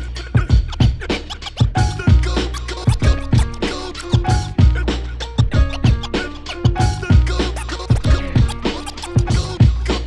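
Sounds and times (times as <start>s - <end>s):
looped hip-hop drum beat: 0.0s - 10.0s
turntable scratching: 0.1s - 10.0s.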